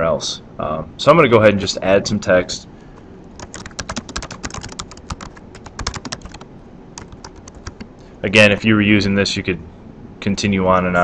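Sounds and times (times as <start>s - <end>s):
computer keyboard typing: 3.3s - 6.4s, 7.0s - 7.9s.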